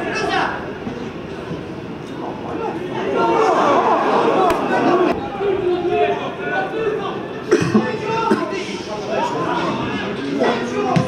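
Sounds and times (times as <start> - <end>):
crowd calling and shouting: 0.0 - 11.0.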